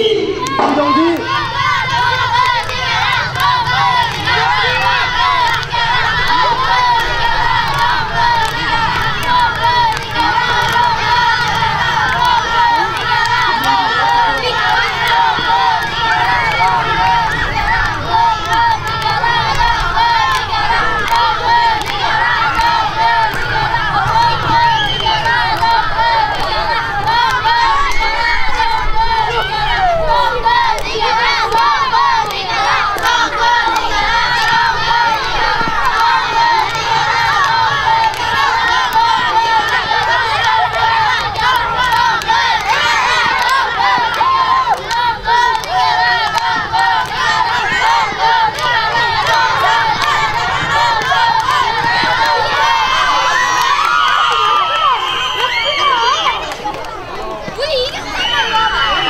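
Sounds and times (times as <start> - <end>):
children shouting and shrieking: 0.0 - 59.0.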